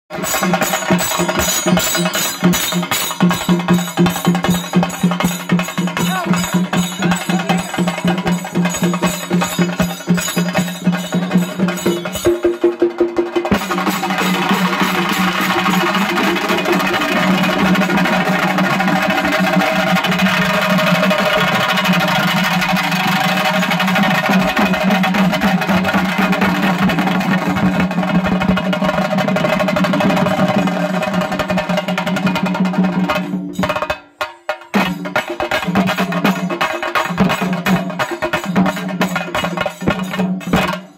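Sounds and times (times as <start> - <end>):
drums rolling fast: 0.1 - 34.0, 34.6 - 40.9
small hand cymbals: 0.2 - 12.8, 13.5 - 25.3.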